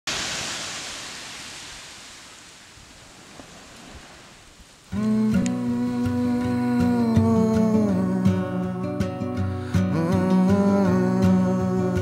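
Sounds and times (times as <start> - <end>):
surf washing onto beach: 0.0 - 7.6.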